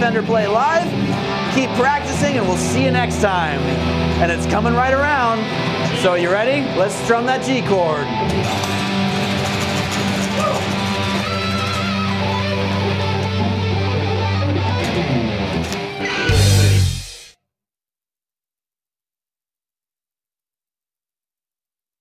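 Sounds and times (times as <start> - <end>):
heavy metal electric guitars: 0.0 - 17.3.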